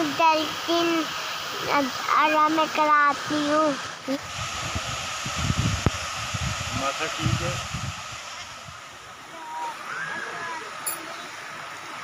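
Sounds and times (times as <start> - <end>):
waterfall rushing: 0.0 - 12.0
wind buffeting microphone: 4.2 - 9.0.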